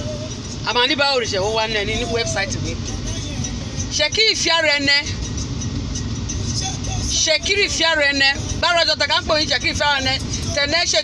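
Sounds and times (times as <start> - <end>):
car cabin rumble: 0.0 - 11.0.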